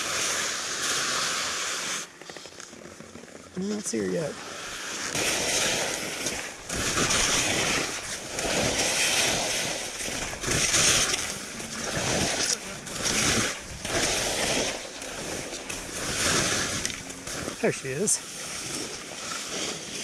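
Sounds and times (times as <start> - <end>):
skis scraping over snow: 0.0 - 20.0
wind rumbling on microphone: 3.4 - 20.0.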